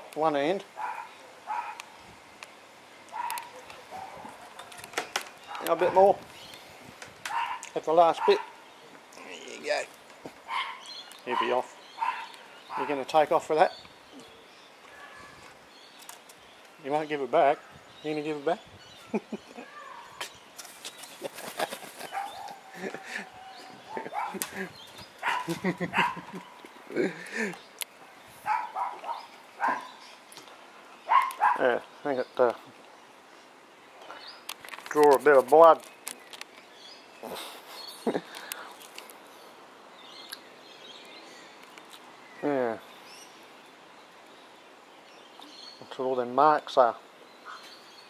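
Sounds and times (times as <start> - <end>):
thin steady animal call: 10.4 - 13.2.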